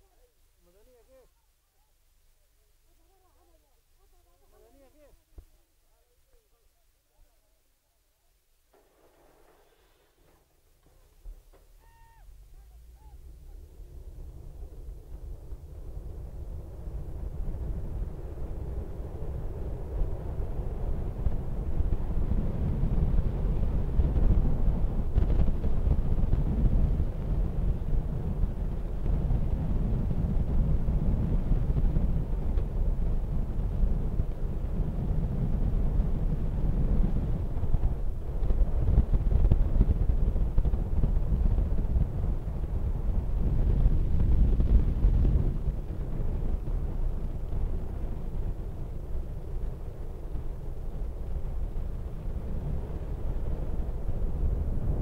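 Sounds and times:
wind buffeting microphone: 9.0s - 55.0s
vehicle rumble: 9.4s - 55.0s.

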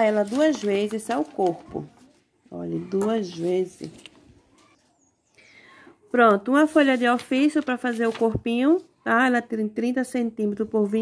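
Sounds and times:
paper rustling: 0.0s - 5.0s, 6.3s - 8.9s.

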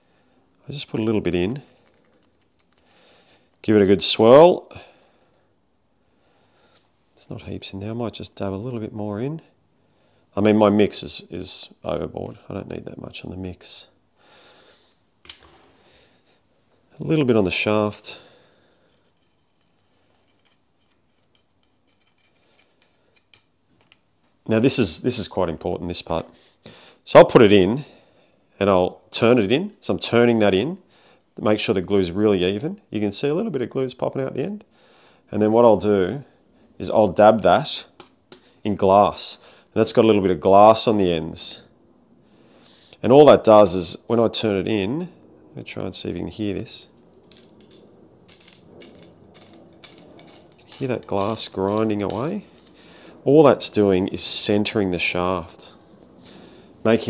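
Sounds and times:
wooden stick ticking and scraping: 1.5s - 4.3s, 18.9s - 24.0s, 47.2s - 54.0s
gritty grinding scrapes: 47.2s - 53.9s.

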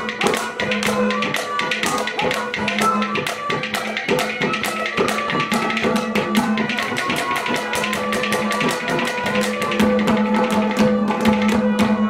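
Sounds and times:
hand drum percussion: 0.0s - 12.0s.

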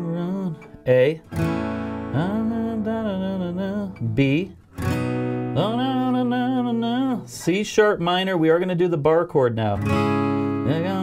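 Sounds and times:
acoustic guitar chord ringing: 0.0s - 7.5s, 9.5s - 11.0s.

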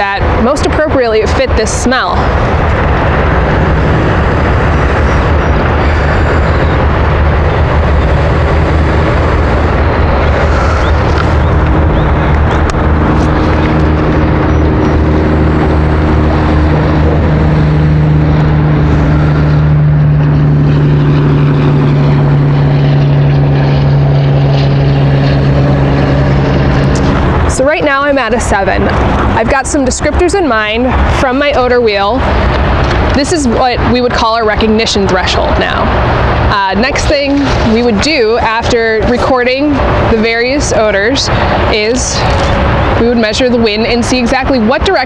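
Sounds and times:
loud engine drone: 0.0s - 45.0s.

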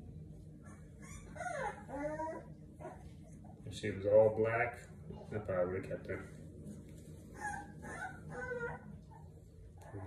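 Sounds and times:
puppy whining: 0.5s - 3.6s, 7.2s - 10.0s.

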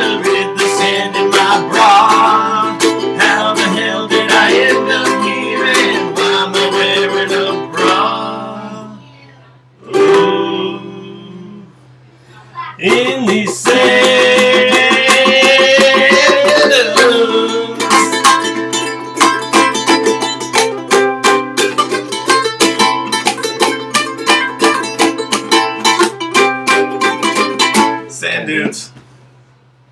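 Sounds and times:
ukuleles strumming: 0.0s - 29.0s
man singing a long note: 9.8s - 11.7s, 12.8s - 18.0s.

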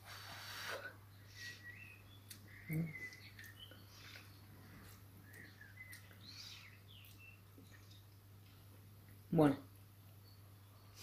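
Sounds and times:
faint high chirps: 0.3s - 8.1s, 10.1s - 11.0s.

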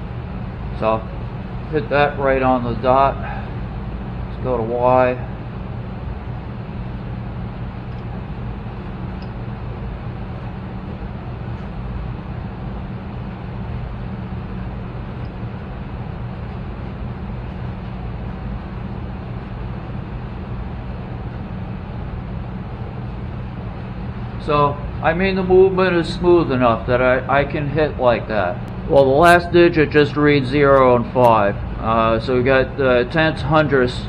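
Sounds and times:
low machine hum: 0.0s - 34.0s.

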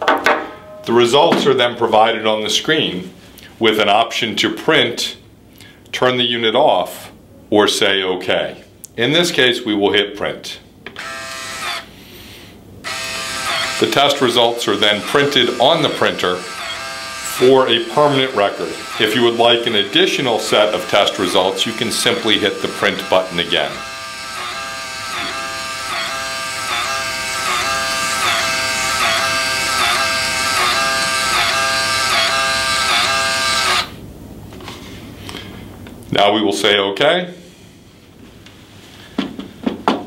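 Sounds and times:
printer motor buzz: 11.0s - 11.9s, 12.8s - 34.0s.

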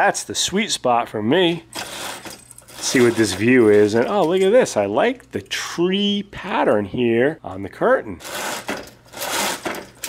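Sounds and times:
curtain hooks sliding along rail: 1.8s - 4.5s, 8.2s - 10.0s.

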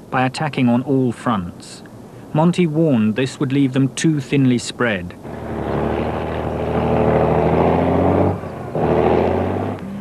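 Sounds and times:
heavy engines droning: 5.2s - 10.0s.

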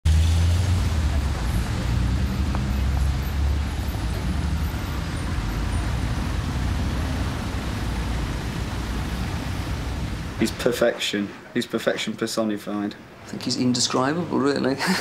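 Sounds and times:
road traffic rumble: 0.0s - 11.6s.

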